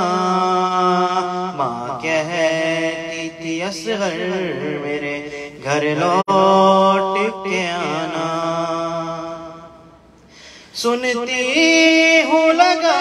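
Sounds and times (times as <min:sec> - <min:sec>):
man singing a slow lament: 0:00.0 - 0:09.9, 0:10.7 - 0:13.0.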